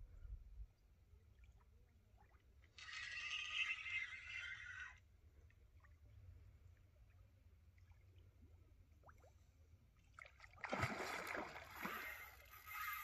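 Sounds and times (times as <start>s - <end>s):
fishing reel drag whirring: 2.8s - 5.0s, 11.8s - 13.0s.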